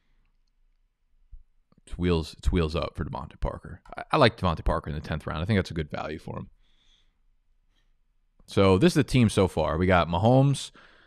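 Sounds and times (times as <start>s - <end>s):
person speaking: 1.8s - 6.5s, 8.5s - 10.8s.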